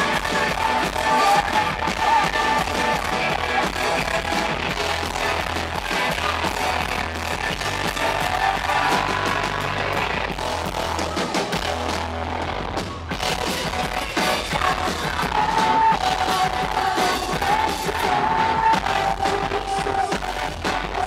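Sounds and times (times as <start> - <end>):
held bass notes: 0.0 - 21.0
live rock band playing: 0.0 - 21.0.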